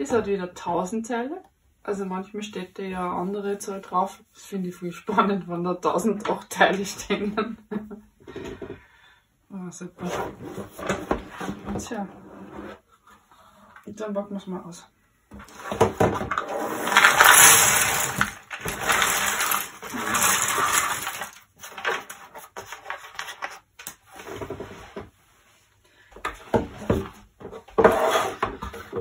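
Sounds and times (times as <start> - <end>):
puzzle pieces pouring onto table: 16.4 - 22.2.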